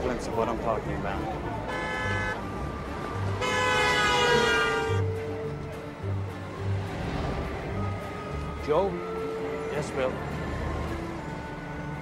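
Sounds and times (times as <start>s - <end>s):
street traffic: 0.0s - 12.0s
car horn honking: 1.6s - 2.6s, 3.4s - 5.2s.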